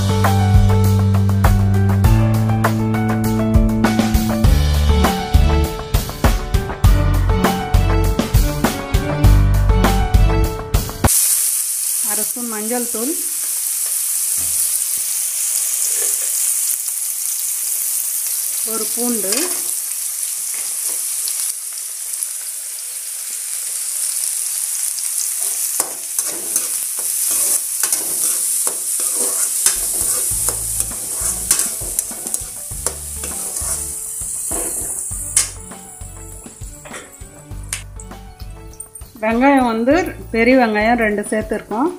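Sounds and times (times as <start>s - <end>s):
food sizzling in hot oil: 10.8s - 37.6s
metal ladle scraping and clicking pan: 25.8s - 33.9s.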